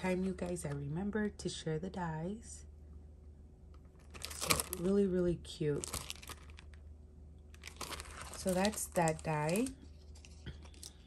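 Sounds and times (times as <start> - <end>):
package crinkling and rustling: 3.9 - 5.0, 5.7 - 6.9, 7.5 - 11.0.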